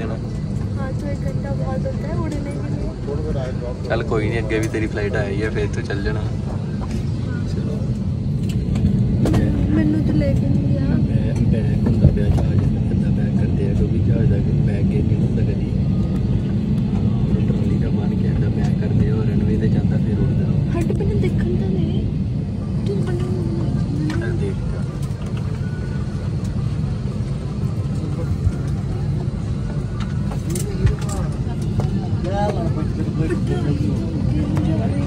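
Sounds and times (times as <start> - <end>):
faint voices in cabin: 0.0 - 35.0
jet airliner taxiing rumble: 0.0 - 35.0.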